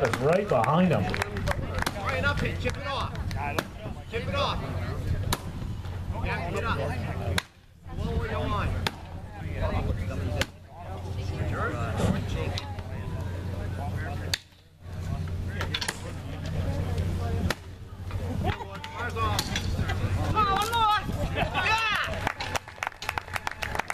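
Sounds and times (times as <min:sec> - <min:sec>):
crowd voices and shouts: 0:00.0 - 0:23.9.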